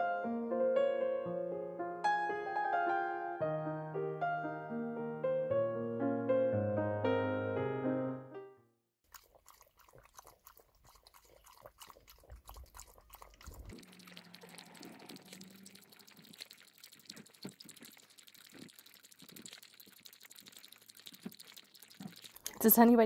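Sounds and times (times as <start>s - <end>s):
dog lapping water: 9.1s - 23.0s.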